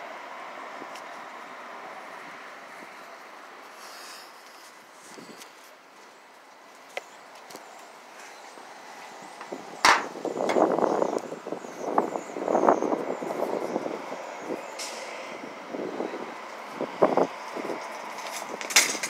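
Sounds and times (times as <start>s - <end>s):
vehicle passing: 8.5s - 18.7s.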